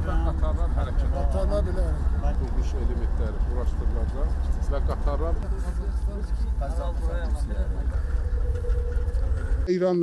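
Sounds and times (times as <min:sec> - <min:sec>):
heavy low outdoor rumble: 0:00.0 - 0:09.7
steady hum: 0:00.0 - 0:09.7
men talking in a group: 0:00.0 - 0:10.0.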